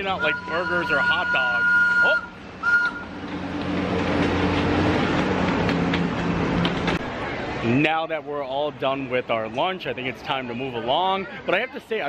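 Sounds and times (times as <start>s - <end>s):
train rolling on track: 0.0s - 7.2s
clicking wheels and couplings: 3.2s - 7.0s.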